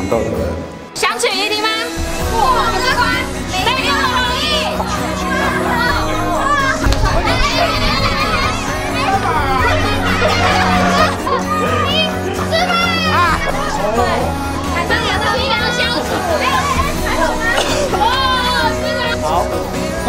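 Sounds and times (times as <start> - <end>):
background music: 0.0 - 20.0
excited shouting and laughter: 2.2 - 20.0.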